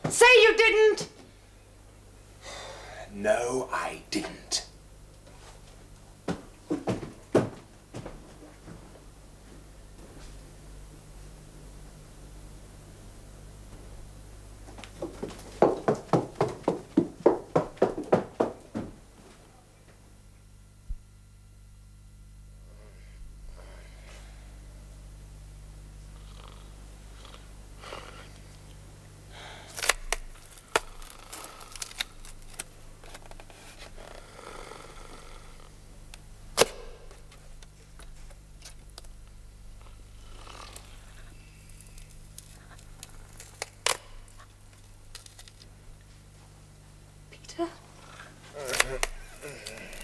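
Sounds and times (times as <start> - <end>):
low steady hum: 0.0 - 50.0
person gasping: 2.4 - 3.1, 49.3 - 50.0
rasping purr-like breath: 34.0 - 35.7, 40.2 - 41.8.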